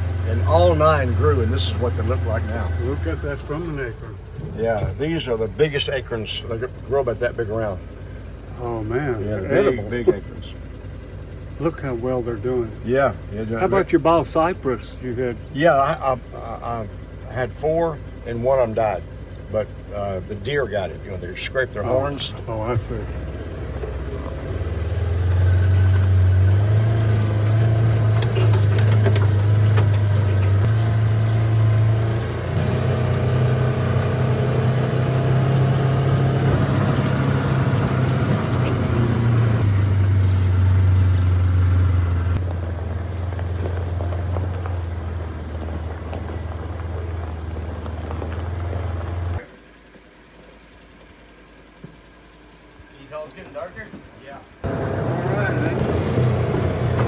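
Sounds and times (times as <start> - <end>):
utility vehicle engine droning: 0.0 - 57.0.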